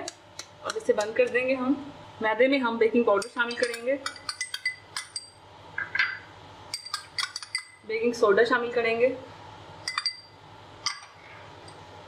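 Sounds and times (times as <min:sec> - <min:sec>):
glass bowl clinking: 0:03.2 - 0:07.8, 0:09.8 - 0:11.8.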